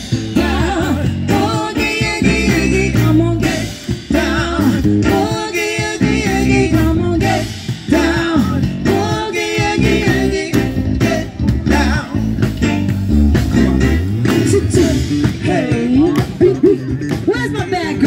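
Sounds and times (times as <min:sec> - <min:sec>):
guitar: 0:00.0 - 0:18.0
steady drum beat: 0:00.0 - 0:18.0
person singing: 0:14.5 - 0:18.0.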